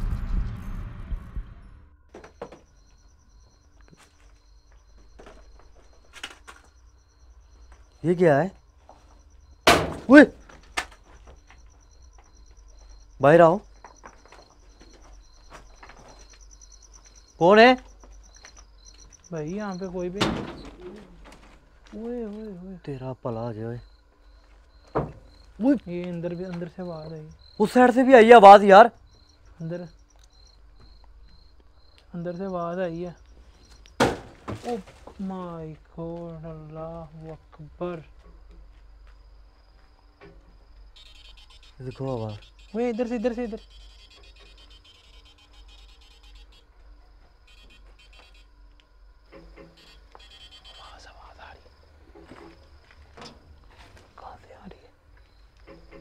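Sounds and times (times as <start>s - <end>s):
crickets chirping: 0.0s - 56.0s
steady low hum: 0.0s - 56.0s.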